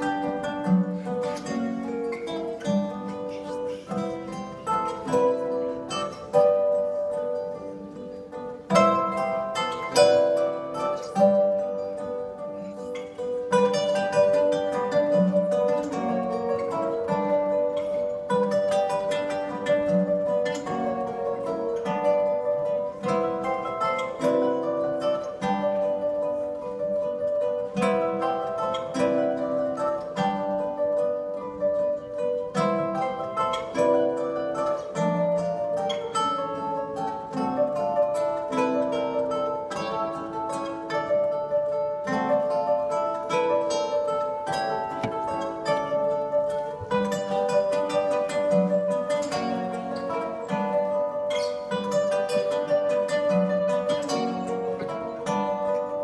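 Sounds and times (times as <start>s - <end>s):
classical guitars playing waltz: 0.0s - 56.0s.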